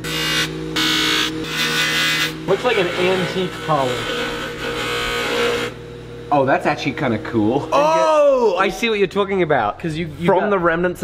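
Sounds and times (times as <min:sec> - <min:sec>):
bench buffer motor hum: 0:00.0 - 0:11.0.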